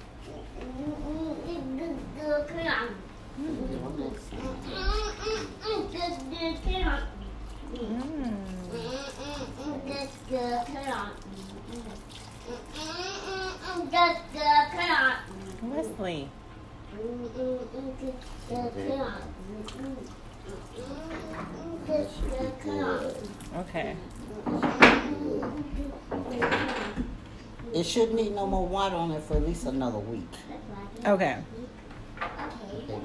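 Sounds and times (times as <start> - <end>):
child's voice: 0.6 - 3.0, 4.4 - 7.1, 8.7 - 15.3, 16.9 - 23.2, 24.3 - 26.8, 30.5 - 33.0.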